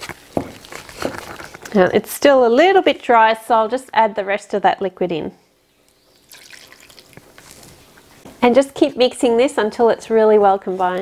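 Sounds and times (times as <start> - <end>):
milk pouring into metal bowl: 6.2 - 7.4.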